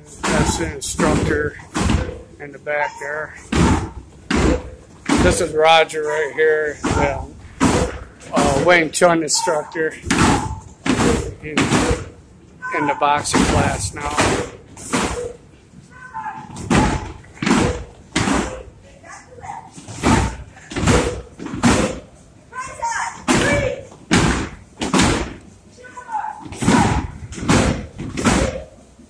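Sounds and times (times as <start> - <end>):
voices: 0.0 - 3.6, 5.0 - 12.0, 12.6 - 14.5, 15.8 - 17.2, 18.5 - 21.2, 25.7 - 27.2
punches thudding on punching bags: 0.2 - 2.3, 3.4 - 5.6, 6.8 - 8.8, 10.0 - 12.2, 13.2 - 15.4, 16.5 - 18.7, 19.9 - 22.1, 23.3 - 25.4, 26.4 - 28.8.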